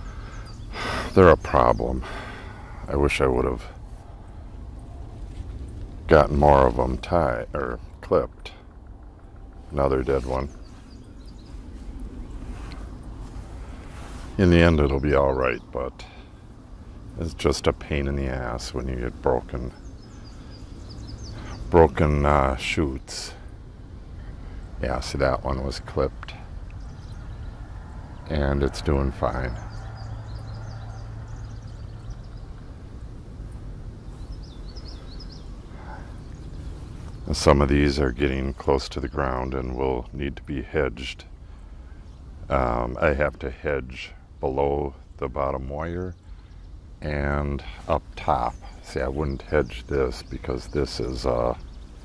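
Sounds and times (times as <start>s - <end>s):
wind buffeting microphone: 0.0s - 39.4s
faint bird chirps: 0.0s - 40.2s, 45.9s - 52.0s.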